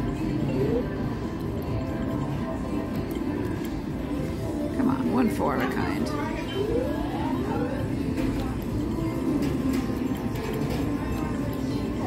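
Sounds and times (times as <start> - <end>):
background chatter: 0.0 - 12.0
electronic slot machine music: 0.4 - 2.6.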